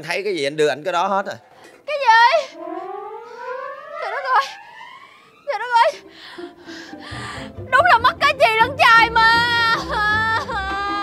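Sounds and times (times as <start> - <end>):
rising whistle-like tone: 2.4 - 6.1.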